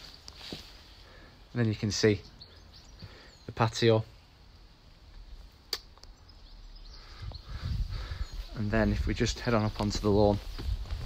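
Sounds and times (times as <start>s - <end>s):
sharp click: 5.7s - 6.2s.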